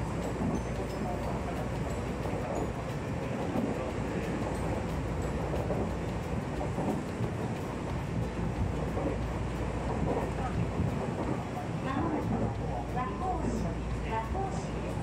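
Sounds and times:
train wheels rumbling on rail: 0.0 - 15.0.

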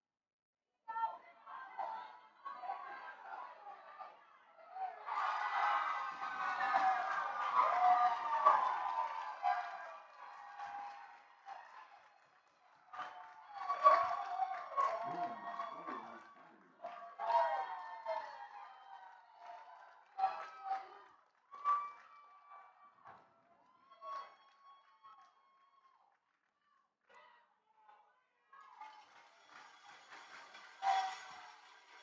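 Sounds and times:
players and spectators shouting: 1.4 - 11.1, 13.1 - 16.4.

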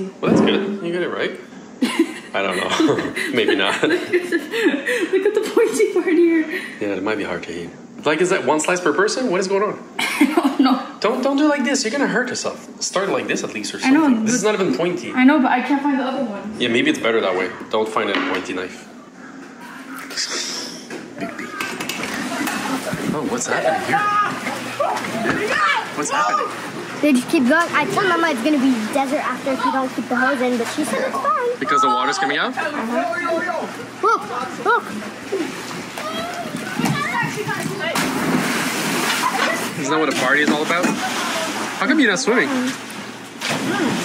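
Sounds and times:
churning water: 21.2 - 44.0
person splashing into pool: 37.8 - 39.8, 40.6 - 41.8, 42.5 - 44.0.

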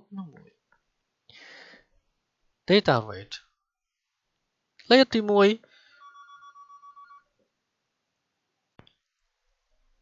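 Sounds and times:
electronic trilling ring tone: 5.8 - 7.3.

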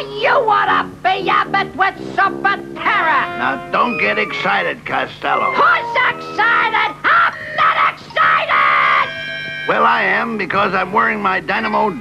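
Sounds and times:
steady held tone: 2.4 - 7.1
cartoon voice yelling excitedly: 5.3 - 9.1.

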